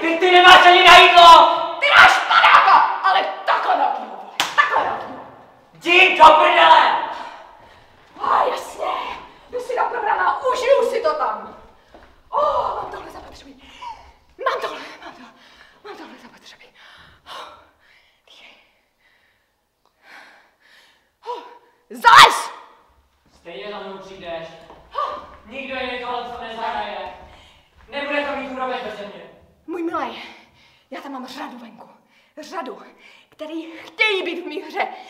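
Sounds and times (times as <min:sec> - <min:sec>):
angry shouting: 0:00.0 - 0:07.6, 0:08.2 - 0:11.4, 0:21.9 - 0:22.8
sharp slap: 0:04.3 - 0:05.2.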